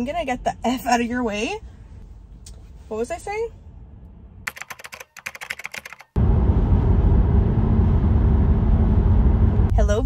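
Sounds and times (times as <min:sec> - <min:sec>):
keyboard typing clicks: 0:04.5 - 0:06.2
car road noise on highway: 0:06.2 - 0:10.0.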